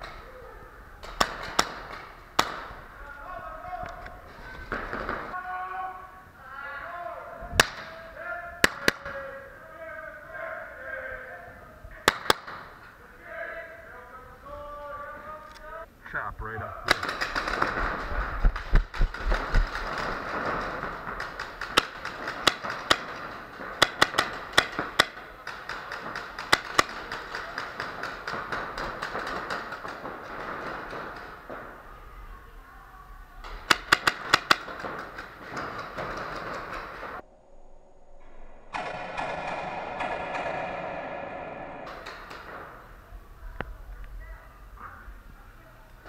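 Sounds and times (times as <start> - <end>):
indoor hall noise: 0.0 - 15.8, 16.6 - 37.2, 38.7 - 46.0
paintball markers firing: 1.0 - 2.8, 12.0 - 12.8, 16.9 - 31.8, 33.4 - 37.2, 41.9 - 43.0.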